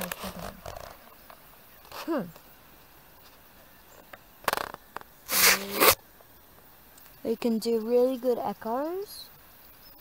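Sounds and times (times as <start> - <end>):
faint outdoor hiss: 0.0 - 10.0
short loud rush of noise: 5.3 - 6.0.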